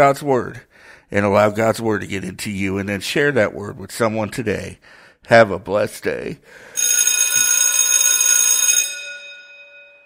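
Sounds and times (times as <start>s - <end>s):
bell-like chime ringing: 6.8s - 10.0s.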